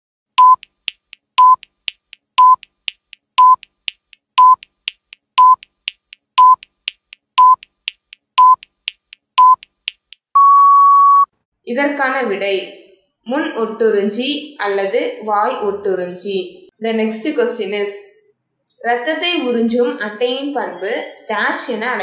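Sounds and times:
short beeps with clicks: 0.4 - 0.8, 1.4 - 1.7, 2.4 - 2.7, 3.4 - 3.7, 4.4 - 4.7, 5.4 - 5.7, 6.4 - 6.7, 7.4 - 7.7, 8.4 - 8.7, 9.4 - 9.7, 10.4 - 11.3.

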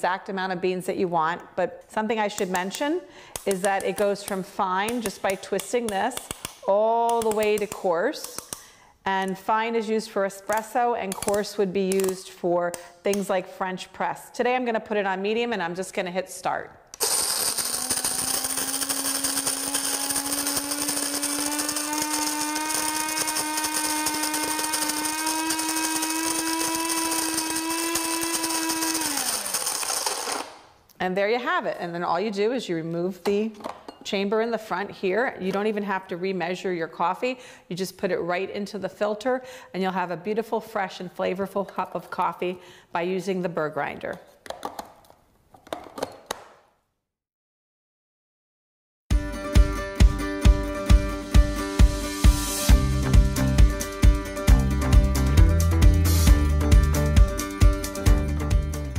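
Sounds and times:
electric coffee grinder running: 17.0 - 30.6.

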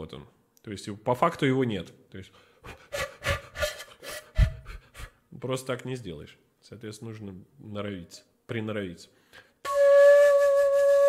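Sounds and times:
breathy flute puffs: 2.7 - 5.2, 9.6 - 11.0
faint flute notes: 9.6 - 11.0.

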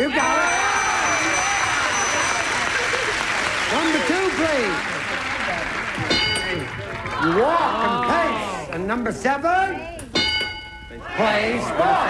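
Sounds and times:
voices calling out: 0.0 - 5.0
audience applauding: 0.2 - 8.8.

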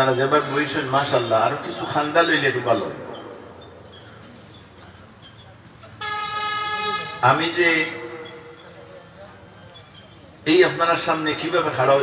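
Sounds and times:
horn steady tone: 6.0 - 8.2.

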